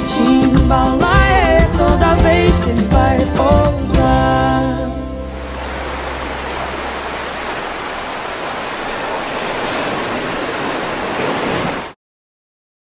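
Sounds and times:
ocean waves washing: 5.1 - 12.0.

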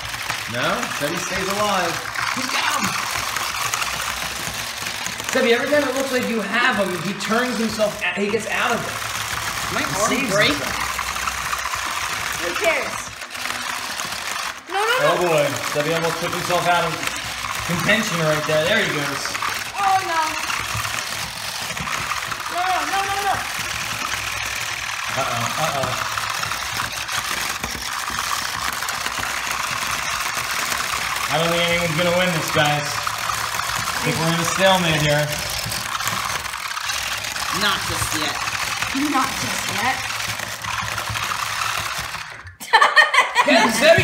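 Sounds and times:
small robot motors buzzing: 0.0 - 42.6, 43.5 - 44.0.

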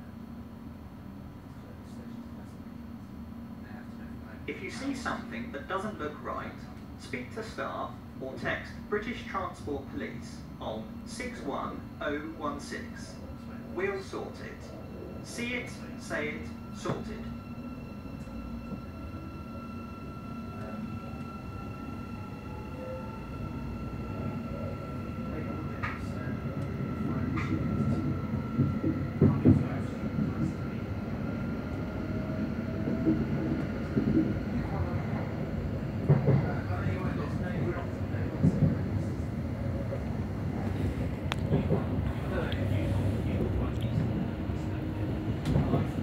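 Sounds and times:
train interior rumble: 0.0 - 46.0.

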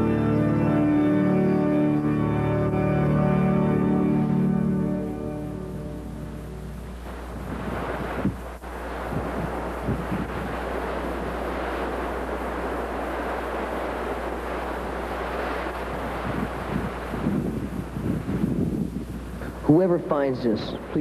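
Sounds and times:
surf rushing: 2.7 - 21.0
wind buffeting microphone: 5.4 - 21.0.

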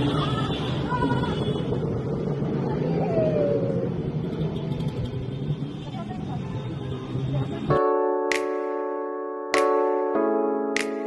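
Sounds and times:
road and wind noise: 0.0 - 11.0.

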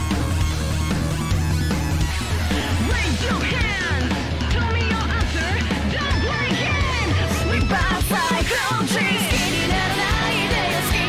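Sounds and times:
electric guitar: 0.0 - 11.0
heavy rock song: 0.0 - 11.0.

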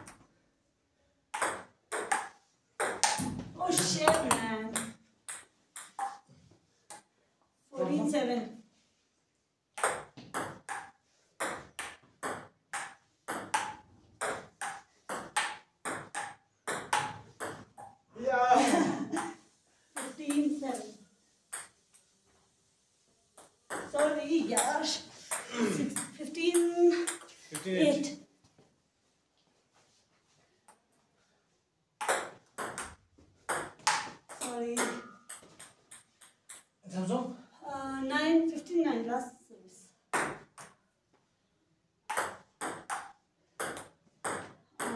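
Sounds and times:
ping-pong ball hitting table and paddles: 1.3 - 6.3, 6.9 - 7.1, 9.7 - 18.1, 19.2 - 22.1, 23.4 - 27.9, 32.0 - 36.8, 40.1 - 40.8, 42.0 - 44.9.

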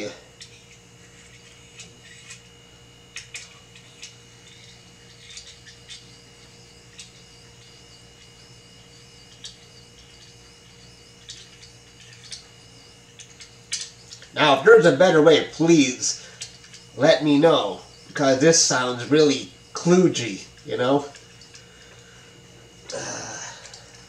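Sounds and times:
steady background hum: 0.0 - 24.0.

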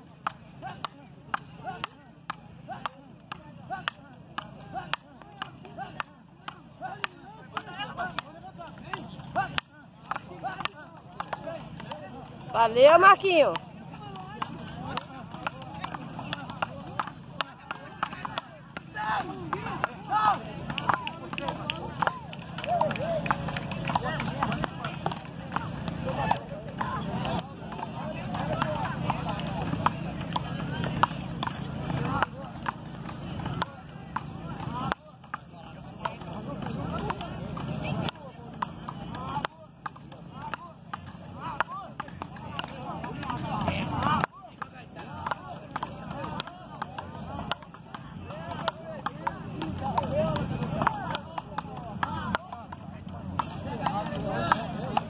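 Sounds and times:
open-air background noise: 0.0 - 55.0
people talking: 0.0 - 55.0.

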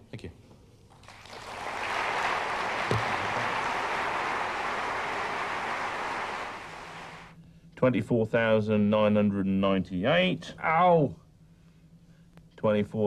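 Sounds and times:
audience applause: 0.9 - 7.3.

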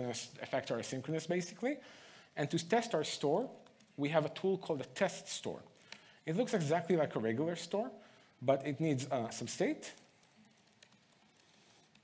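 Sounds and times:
laptop keyboard typing: 2.6 - 7.0, 8.7 - 12.0.

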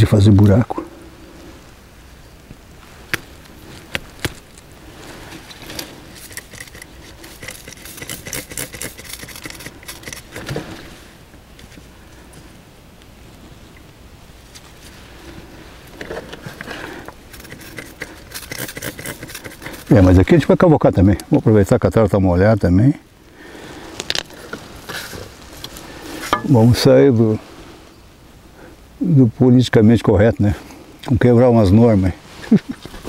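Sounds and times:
gravel clicking and scraping: 2.4 - 21.6, 23.4 - 26.9.

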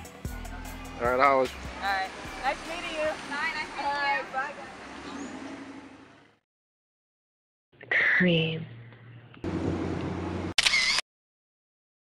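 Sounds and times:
camera whir: 10.0 - 11.0
camera shutter click: 10.6 - 11.0.

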